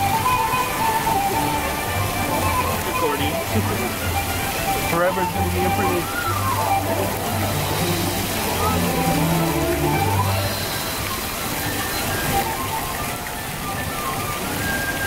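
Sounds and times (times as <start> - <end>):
background music of low notes: 0.0 - 15.0
fountain jets splashing water: 0.0 - 15.0.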